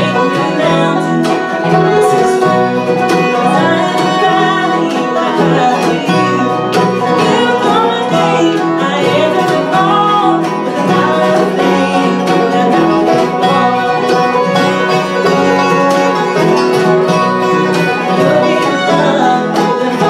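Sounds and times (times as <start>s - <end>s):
acoustic guitar: 0.0s - 20.0s
banjo: 0.0s - 20.0s
fiddle: 0.0s - 20.0s
mandolin: 0.0s - 20.0s
upright bass: 0.0s - 20.0s.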